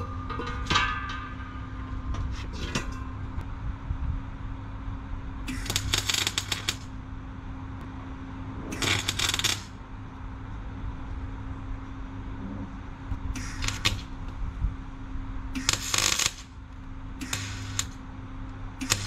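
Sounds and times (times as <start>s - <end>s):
steady low hum: 0.0s - 19.0s
arc welder crackling: 5.5s - 7.0s, 8.6s - 9.9s, 13.3s - 14.5s, 15.4s - 19.0s.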